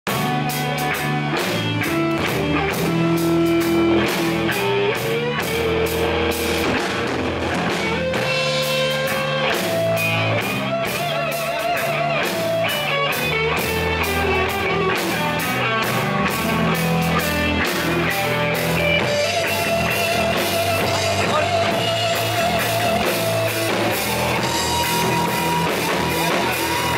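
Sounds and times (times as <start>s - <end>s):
drum kit beat: 0.1s - 26.9s
electric guitar: 0.1s - 26.9s.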